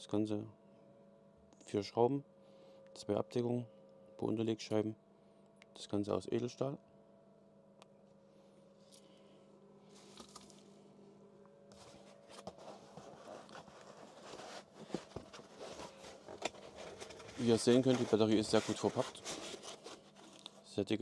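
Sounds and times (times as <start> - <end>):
cardboard box being opened: 11.7 - 20.5
foam sheet rustling: 11.7 - 20.7.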